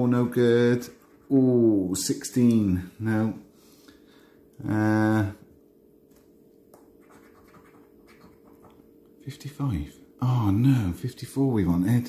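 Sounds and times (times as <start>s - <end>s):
coin scraping scratch card: 7.0s - 8.7s.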